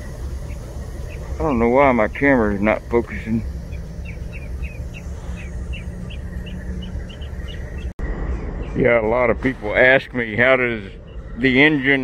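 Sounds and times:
small bird chirping: 0.0s - 8.9s, 10.3s - 12.0s
steady low rumble: 0.0s - 12.0s.

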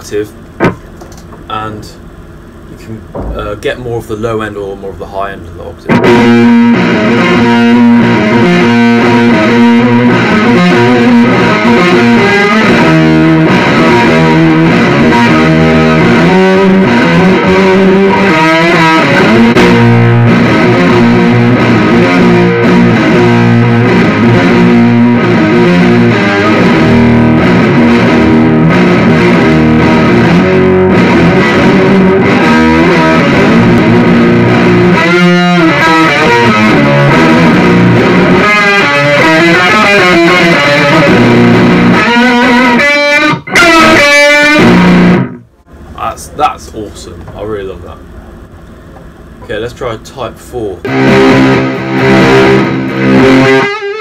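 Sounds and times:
electric guitar with octave effect: 0.0s - 3.9s, 5.8s - 46.0s, 50.8s - 54.0s.

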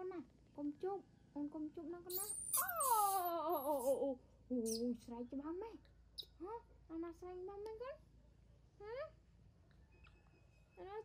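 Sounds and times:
baby monkey crying: 2.1s - 4.0s
woman cooing: 2.8s - 4.0s.

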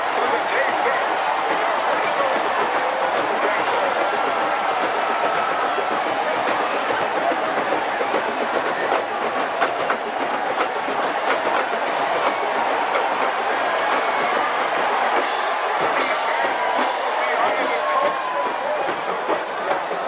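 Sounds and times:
stadium crowd noise: 0.0s - 20.0s.

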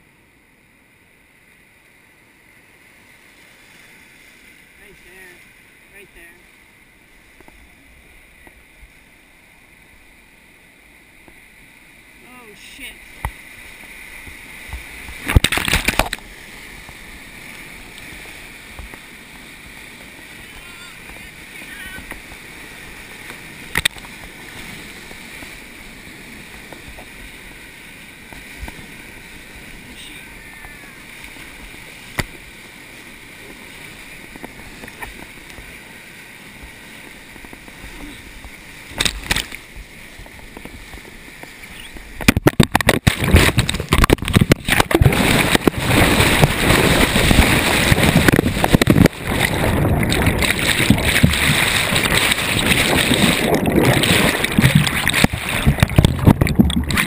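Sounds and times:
whitewater rushing: 2.6s - 57.0s
underwater churning and bubbles: 3.9s - 57.0s.

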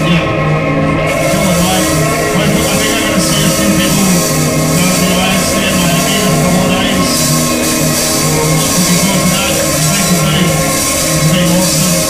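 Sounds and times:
bass line: 0.0s - 12.0s
rock band playing live: 0.0s - 12.0s.

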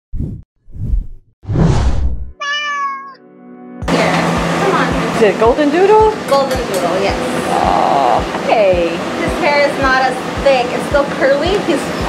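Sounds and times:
cat meow: 2.4s - 3.2s
held musical chord: 3.2s - 11.2s.

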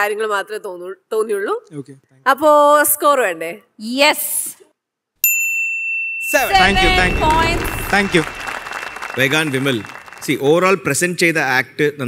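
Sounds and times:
voices: 6.3s - 8.4s
audience applause: 6.5s - 10.9s.

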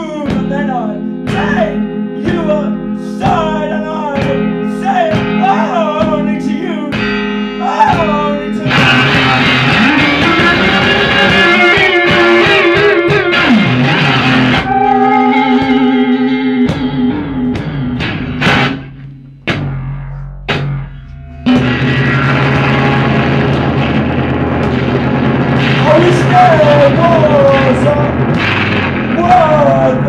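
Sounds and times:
distorted electric guitar: 0.0s - 30.0s.

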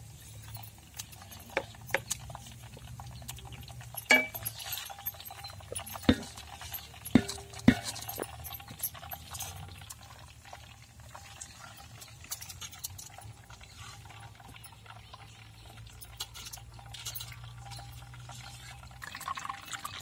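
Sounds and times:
frying oil sizzling: 0.0s - 20.0s
metal ladles scraping iron pot: 0.1s - 20.0s
sharp metal knocks: 4.0s - 4.6s, 5.7s - 8.7s.

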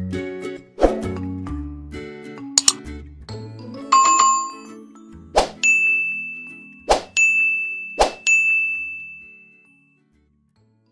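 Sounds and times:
bright bell-like ding: 4.0s - 4.8s.

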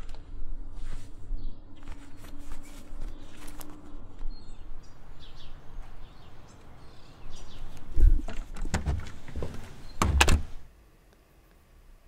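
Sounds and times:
door knocking and shutting: 8.3s - 10.6s.

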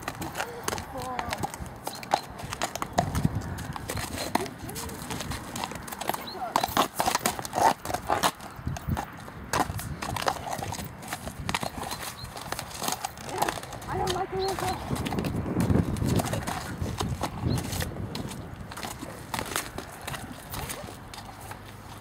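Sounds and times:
horse hooves on mud: 0.0s - 22.0s.

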